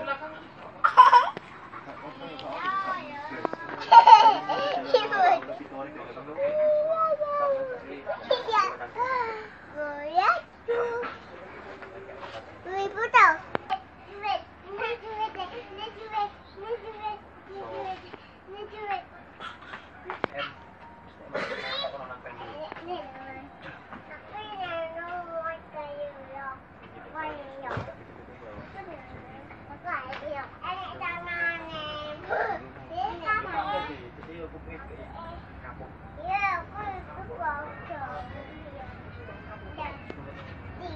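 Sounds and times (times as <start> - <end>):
children chattering and calling out: 0.0 - 11.4, 12.6 - 20.7, 21.4 - 27.8, 28.6 - 34.1, 35.2 - 40.9.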